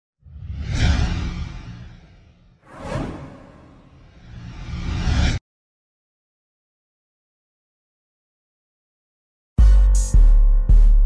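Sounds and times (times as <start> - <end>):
whoosh with low rumble: 0.2 - 5.4.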